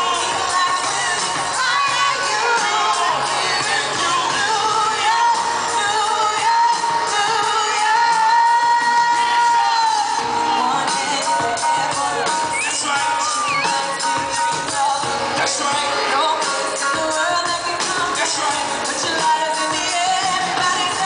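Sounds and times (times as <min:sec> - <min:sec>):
live band playing: 0:00.0 - 0:21.0
woman singing: 0:00.0 - 0:21.0.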